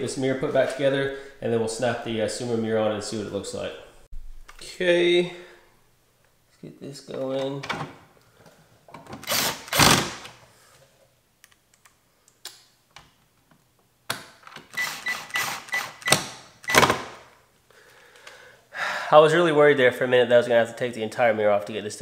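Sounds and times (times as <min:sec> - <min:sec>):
cordless drill driving screws: 0:09.2 - 0:10.3, 0:14.7 - 0:17.0.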